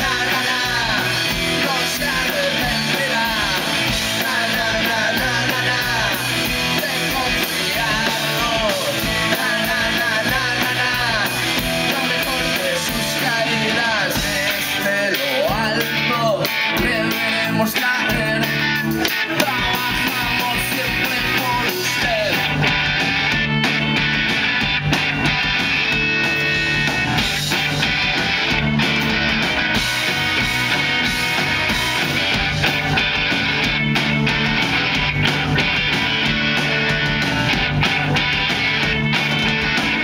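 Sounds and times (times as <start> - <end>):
rock band playing live: 0.0 - 40.0.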